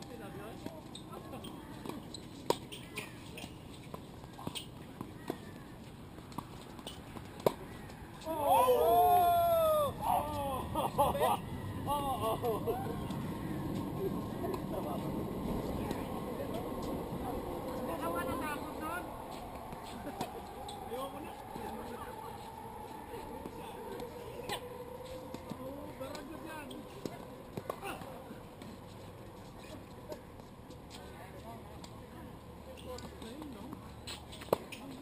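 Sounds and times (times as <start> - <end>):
people laughing: 9.6 - 13.2
people chatting: 13.9 - 28.8.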